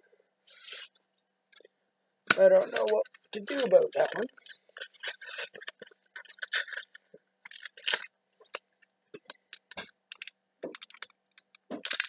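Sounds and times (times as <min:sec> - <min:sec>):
foil wrapper crinkling: 0:02.3 - 0:12.0.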